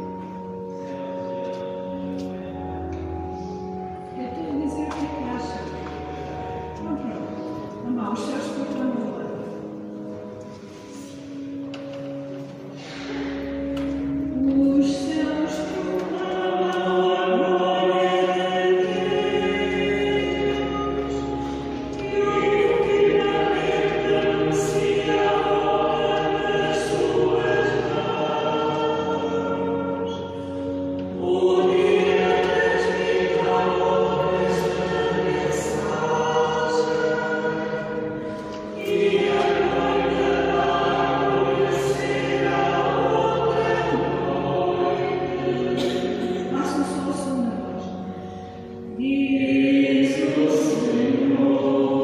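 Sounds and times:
choir singing a sacred chant: 12.8 - 48.2, 48.8 - 52.0.

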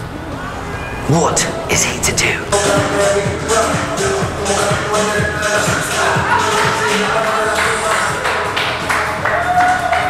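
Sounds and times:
audience clapping: 5.9 - 10.0.

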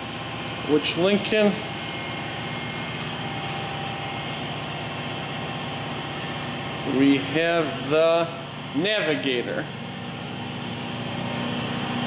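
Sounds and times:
steady mechanical hum: 0.0 - 12.0.

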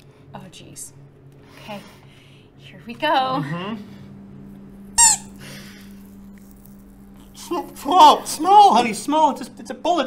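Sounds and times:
low steady hum: 0.0 - 10.0
squeaky toy squeak: 5.0 - 5.3.

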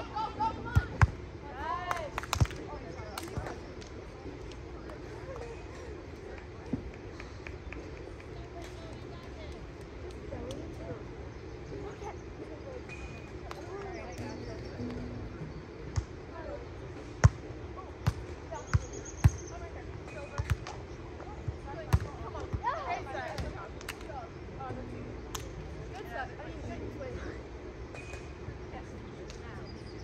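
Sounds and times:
volleyball slaps: 1.9 - 2.6.

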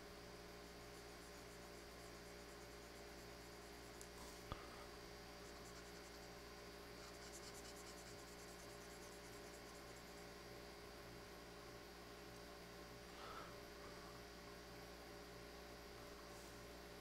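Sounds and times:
steady electrical hum: 0.0 - 17.0
stylus scratching on tablet: 0.7 - 4.3, 5.4 - 6.4, 7.0 - 10.3.

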